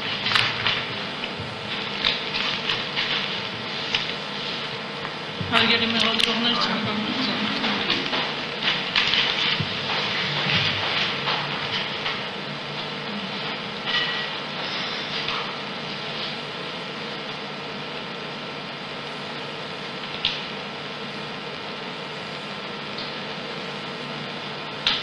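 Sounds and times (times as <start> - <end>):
faint hum: 0.0 - 25.0
room noise hiss: 0.0 - 25.0.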